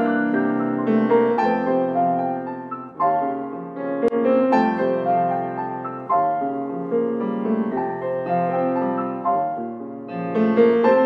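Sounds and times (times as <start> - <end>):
piano duet: 0.0 - 11.0.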